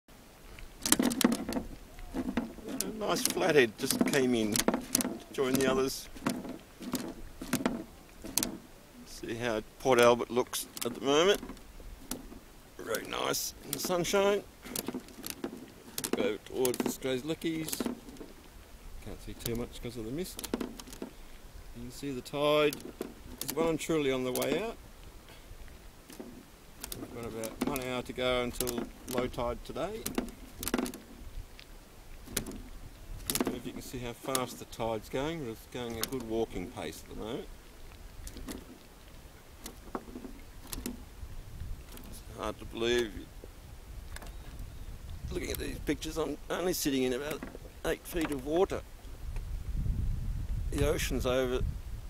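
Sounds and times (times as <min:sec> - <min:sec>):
sharp knocks and taps: 0:00.8 - 0:08.6, 0:26.1 - 0:31.1, 0:32.3 - 0:33.6
sharp knocks and clicks: 0:00.8 - 0:08.7, 0:10.0 - 0:18.4, 0:19.3 - 0:21.2, 0:22.6 - 0:24.7, 0:26.1 - 0:31.2, 0:32.2 - 0:35.2, 0:35.8 - 0:37.2, 0:38.2 - 0:38.9, 0:39.6 - 0:41.0, 0:47.0 - 0:48.5.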